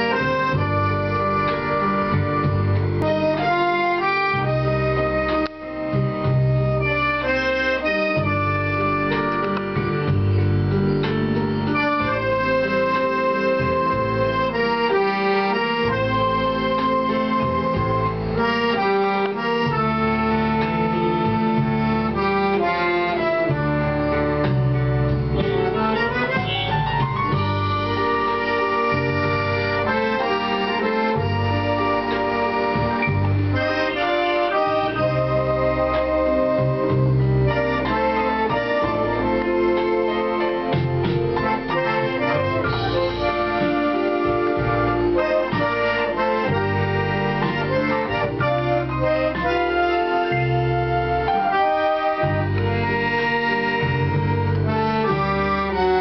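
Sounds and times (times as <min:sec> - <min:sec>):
accordion melody: 0:00.0 - 0:56.0.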